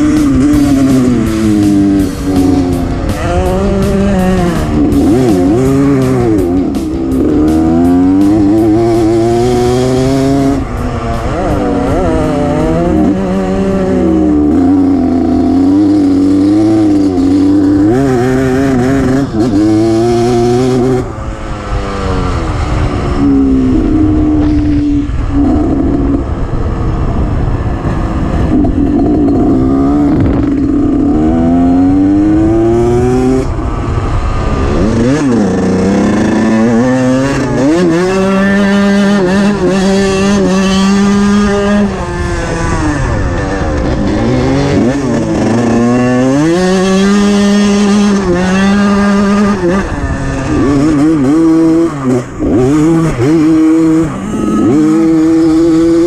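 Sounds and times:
low rushing noise: 0.0s - 56.0s
motorcycle engine revving: 0.0s - 56.0s.

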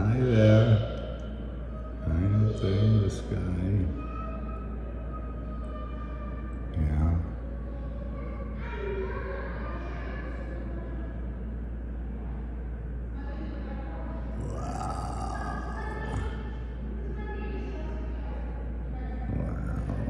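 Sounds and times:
faint indistinct voices: 0.0s - 20.0s
low hum: 14.1s - 17.4s, 18.2s - 20.0s.

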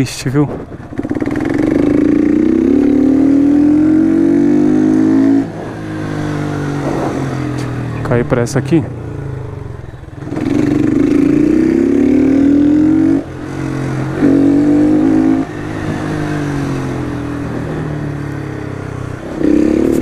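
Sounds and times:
motorcycle engine accelerating: 0.5s - 20.0s.

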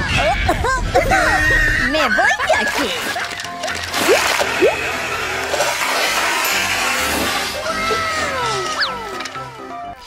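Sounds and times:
short rising squeaks: 1.5s - 9.7s.

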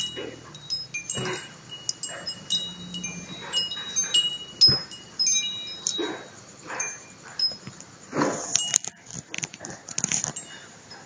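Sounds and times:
small chimes tinkling: 0.0s - 9.1s, 10.0s - 11.0s.

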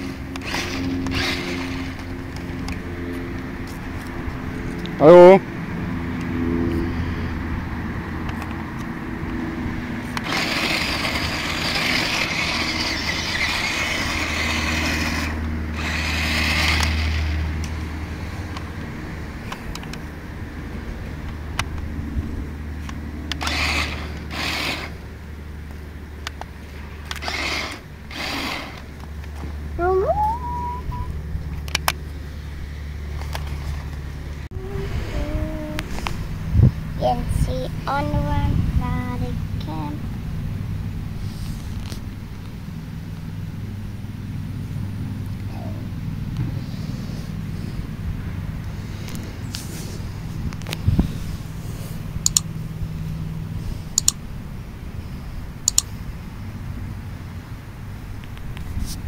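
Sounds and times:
toy truck electric motor whirring: 0.0s - 2.1s, 10.1s - 17.4s, 23.3s - 25.0s, 27.0s - 28.9s
steady low hum: 0.0s - 59.0s.

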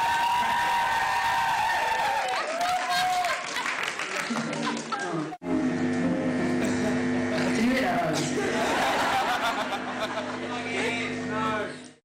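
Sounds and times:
audience applauding and cheering: 0.0s - 5.4s.

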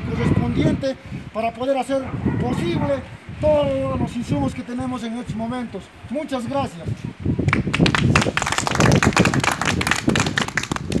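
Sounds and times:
people clapping: 7.4s - 11.0s.

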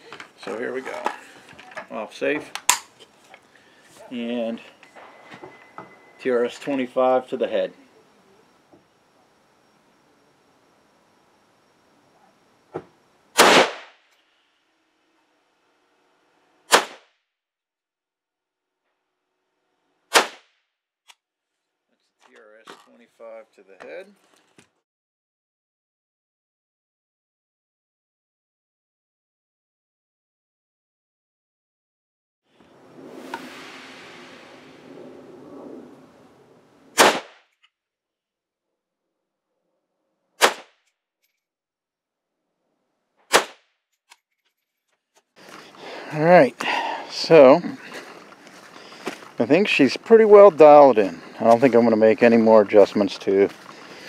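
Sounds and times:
sharp click: 2.6s - 2.9s
rifle shots: 13.4s - 14.0s, 16.7s - 17.0s, 20.1s - 20.4s, 36.9s - 37.4s, 40.4s - 40.7s, 43.3s - 43.6s
faint sharp crack: 40.4s - 40.9s.

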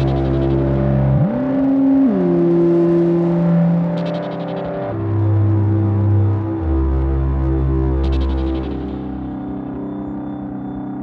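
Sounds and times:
droning synth tones: 0.0s - 11.0s.

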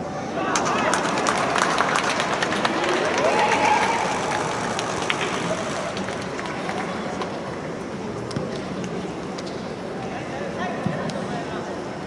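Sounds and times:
stadium crowd noise: 0.0s - 12.0s
distant shouting voices: 2.3s - 6.0s.

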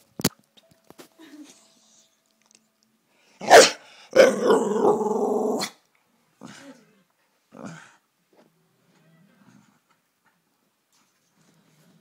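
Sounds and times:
dog barking gruffly: 3.4s - 4.7s.

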